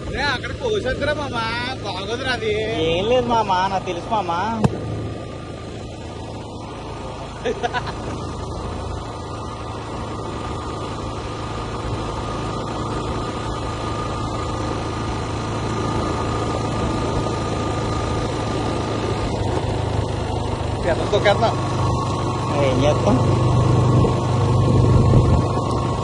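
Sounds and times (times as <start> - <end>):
motorcycle engine running: 0.0 - 26.0
road and wind noise: 0.0 - 26.0.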